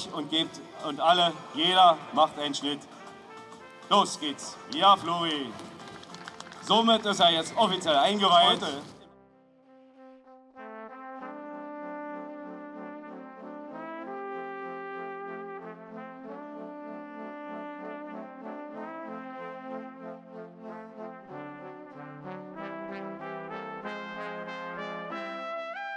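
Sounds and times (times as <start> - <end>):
brass chords: 0.0 - 25.9.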